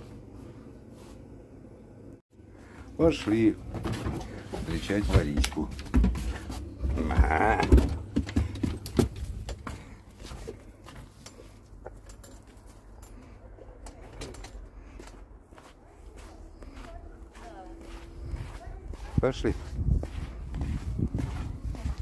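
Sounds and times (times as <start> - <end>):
footsteps crunching on snow: 15.5 - 22.0.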